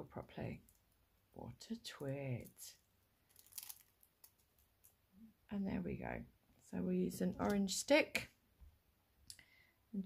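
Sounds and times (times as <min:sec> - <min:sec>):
foil crinkling and rustling: 0:03.3 - 0:04.6.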